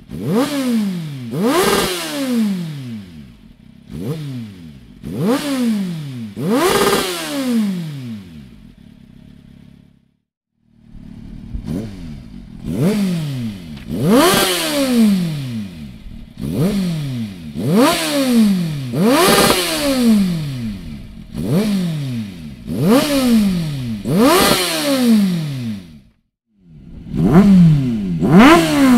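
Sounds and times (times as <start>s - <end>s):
motorcycle engine revving: 0.0s - 28.9s.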